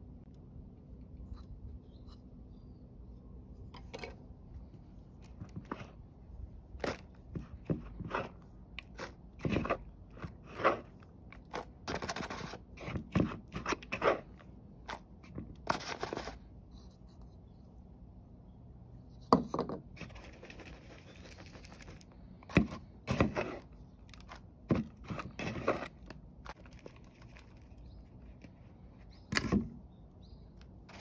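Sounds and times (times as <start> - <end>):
hand digging in potting soil: 4.8 - 17.2, 20.0 - 29.5.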